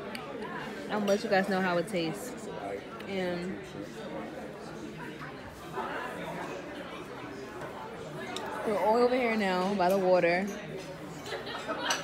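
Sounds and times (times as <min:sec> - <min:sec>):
murmur of diners' voices: 0:00.0 - 0:12.0.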